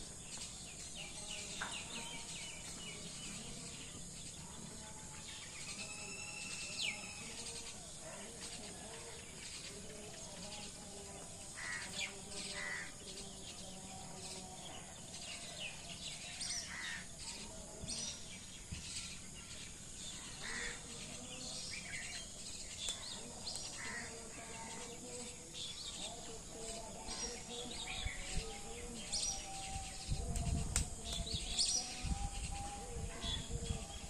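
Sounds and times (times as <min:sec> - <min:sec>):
bird calls and chirps: 0:00.0 - 0:34.0
faint rural background: 0:00.0 - 0:34.0.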